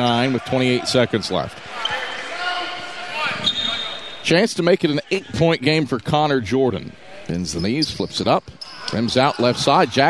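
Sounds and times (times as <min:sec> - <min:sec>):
murmur of voices in a hall: 0:00.0 - 0:04.4.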